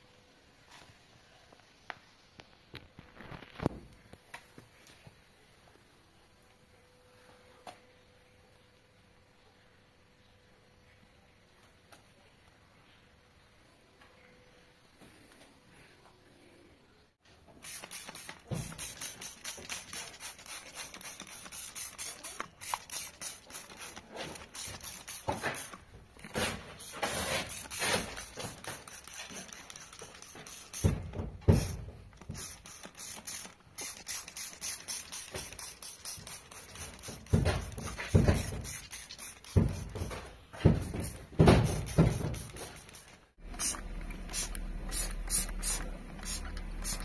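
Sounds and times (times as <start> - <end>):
spray bottle hisses: 17.6 - 47.0.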